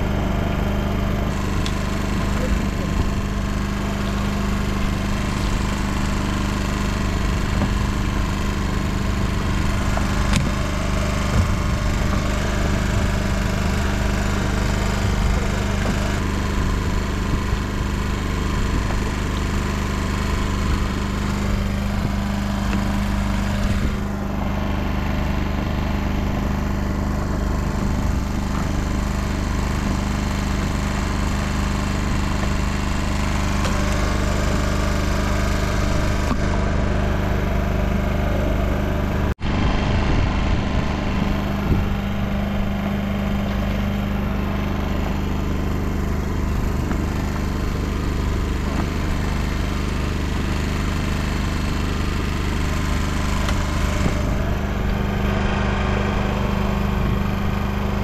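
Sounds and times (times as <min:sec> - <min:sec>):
boat engine idling: 0:00.0 - 0:58.0.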